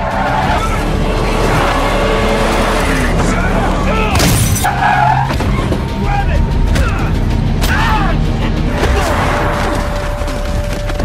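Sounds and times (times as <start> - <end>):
car running rumble: 0.0 - 11.0.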